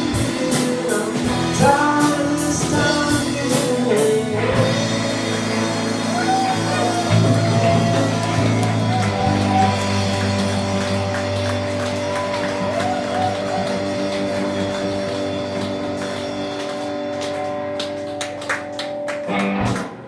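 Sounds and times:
rock band electric guitar chord: 0.0 - 20.0.

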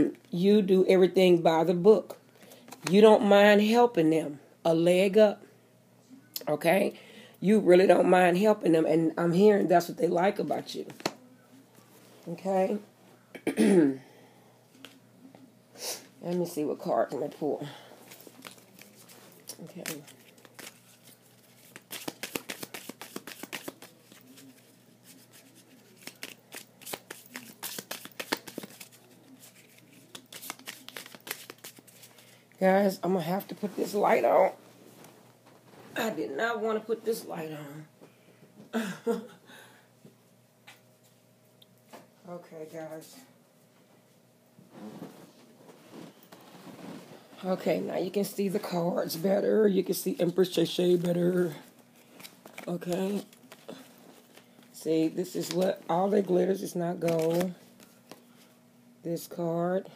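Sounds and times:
faint rustling and handling: 16.1 - 32.5, 33.4 - 36.2, 43.6 - 49.5, 50.1 - 58.6
cards being shuffled: 18.0 - 32.4, 50.6 - 58.3.

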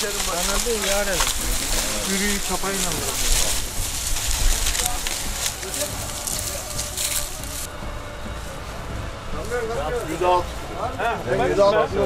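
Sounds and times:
dry stalks rustling and crackling: 0.0 - 12.0
voices in background: 0.0 - 12.0.

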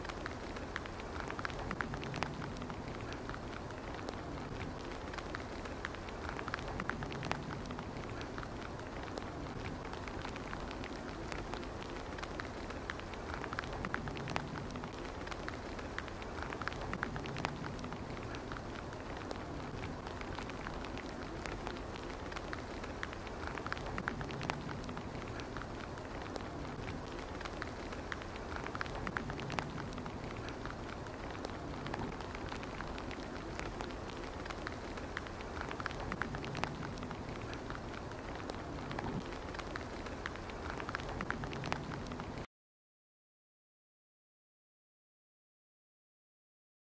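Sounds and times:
small ticks and crackles: 0.0 - 42.5
steady outdoor hiss: 0.0 - 42.5.

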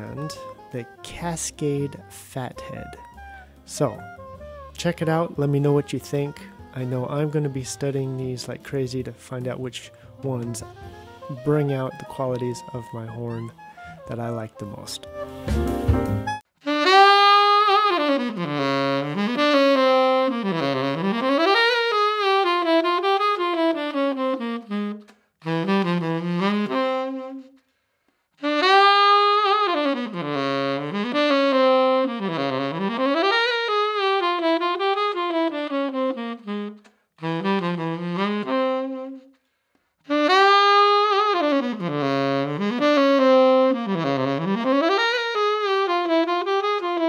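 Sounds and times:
tenor saxophone melody: 0.0 - 9.0, 9.8 - 27.7, 28.4 - 39.4, 40.1 - 47.0.

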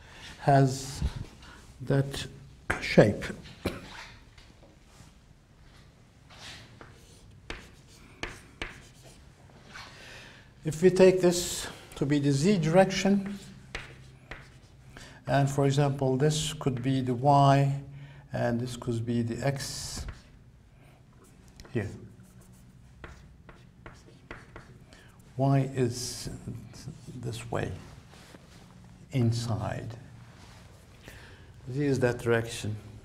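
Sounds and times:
chalk strokes on blackboard: 6.4 - 9.2, 13.2 - 14.8, 22.1 - 24.9.

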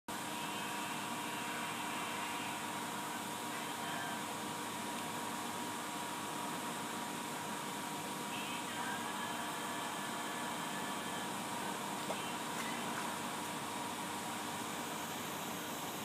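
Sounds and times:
mechanical hum with high tone: 0.1 - 16.0.

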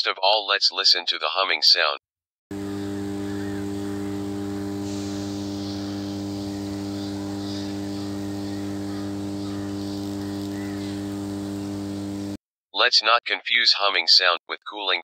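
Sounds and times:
power transformer humming: 2.5 - 12.4.

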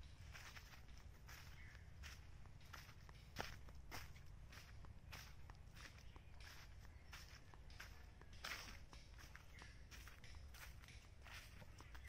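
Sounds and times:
footsteps on dry leaf litter: 0.0 - 12.0.

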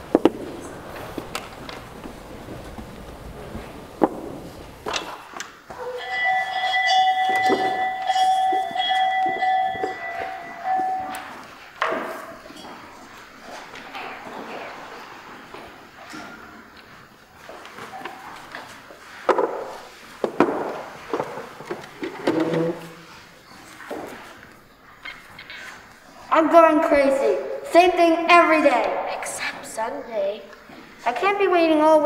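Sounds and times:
knocks and thumps: 0.0 - 5.9, 19.2 - 22.8.

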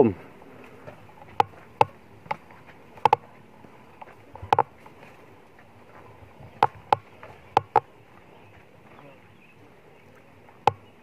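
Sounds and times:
faint outdoor hush: 0.0 - 11.0.

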